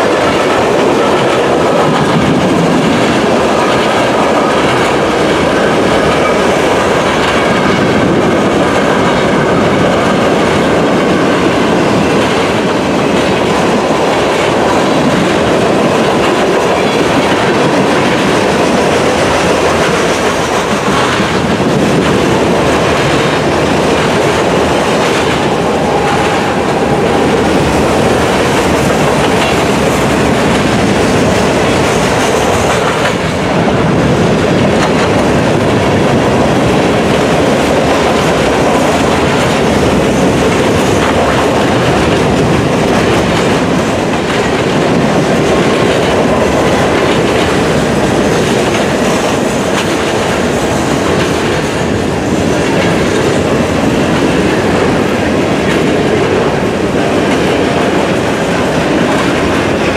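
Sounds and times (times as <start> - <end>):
steel wheels rumbling on rail: 0.0 - 59.9
wheels clicking over rail joints: 0.0 - 59.9.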